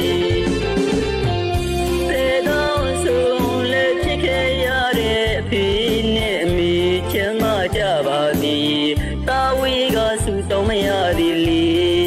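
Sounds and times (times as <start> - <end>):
band with bass and beat: 0.0 - 12.0
person singing: 0.0 - 12.0.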